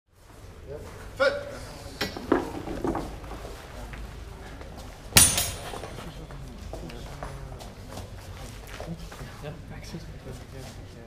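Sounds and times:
steel swords clashing: 0:05.2 - 0:06.1.

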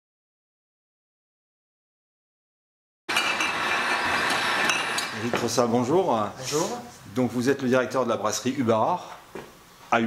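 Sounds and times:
bottling machinery clatter: 0:03.1 - 0:05.6.

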